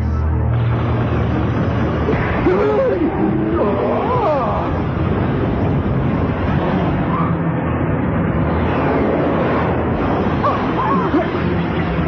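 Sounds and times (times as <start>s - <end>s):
cartoon explosions and blasts: 0.6s - 12.0s.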